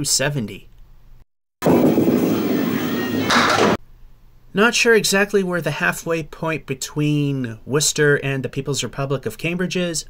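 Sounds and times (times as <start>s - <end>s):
bowling ball rolling on wooden lane: 1.6s - 3.8s
ball clattering into pins: 3.2s - 3.8s.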